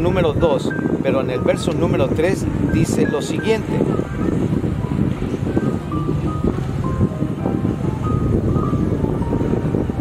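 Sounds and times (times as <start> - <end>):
low rumble of wind: 0.0 - 10.0
slow melody of held notes: 0.6 - 10.0.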